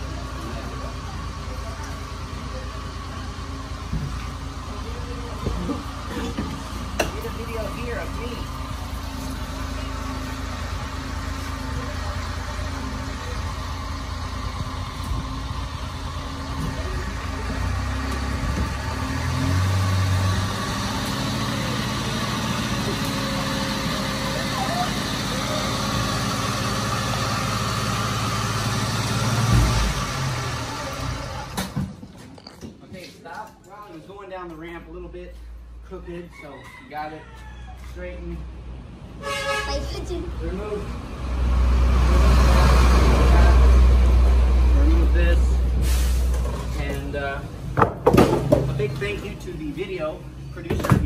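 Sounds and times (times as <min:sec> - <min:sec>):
mini truck engine running: 0:00.0 - 0:32.4.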